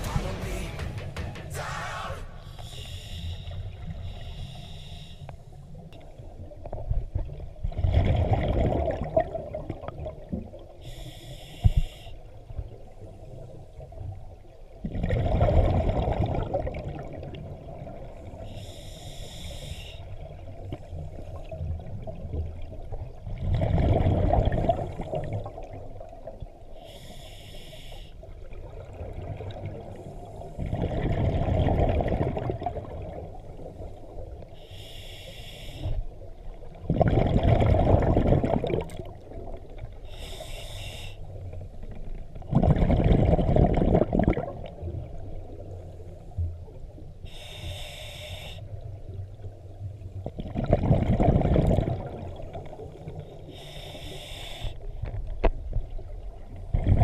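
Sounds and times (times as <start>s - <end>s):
hissing regulator inhale: 2.1s - 5.7s, 10.8s - 12.3s, 18.4s - 20.1s, 26.8s - 28.3s, 34.6s - 36.2s, 40.1s - 41.4s, 47.2s - 48.8s, 53.4s - 55.0s
exhaled bubbles rushing: 7.2s - 10.6s, 14.9s - 18.0s, 22.1s - 25.8s, 30.6s - 33.6s, 36.7s - 40.0s, 42.4s - 45.6s, 50.3s - 53.3s, 56.6s - 57.0s.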